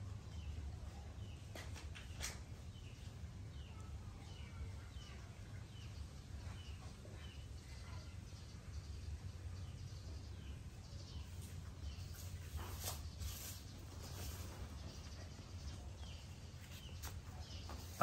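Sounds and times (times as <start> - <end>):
soft rustle: 11.2 - 18.0.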